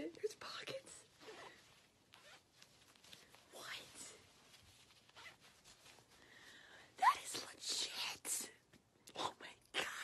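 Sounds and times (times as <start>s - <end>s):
fabric rustling: 0.0s - 7.4s.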